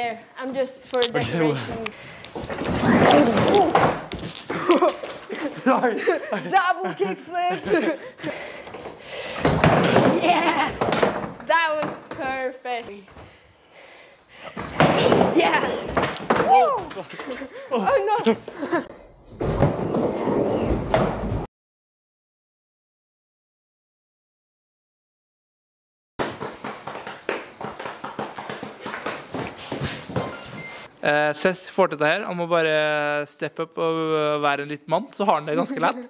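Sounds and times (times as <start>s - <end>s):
skateboard wheels rolling on wood: 19.3s - 21.5s, 26.2s - 30.7s
footsteps on wooden ramp: 26.2s - 30.8s.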